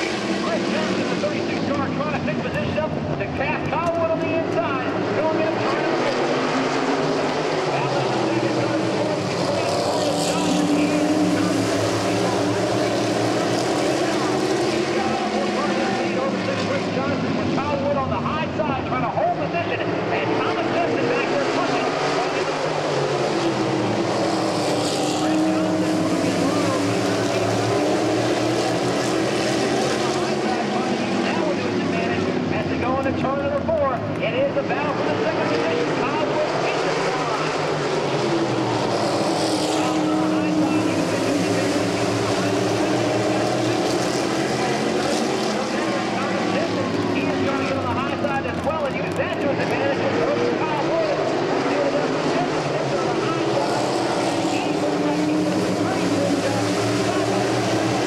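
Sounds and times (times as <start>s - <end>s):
race car engines passing: 0.0s - 58.0s.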